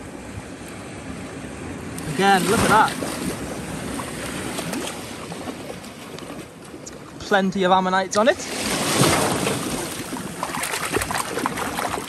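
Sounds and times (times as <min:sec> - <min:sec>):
sea waves washing on shore: 0:00.0 - 0:12.0.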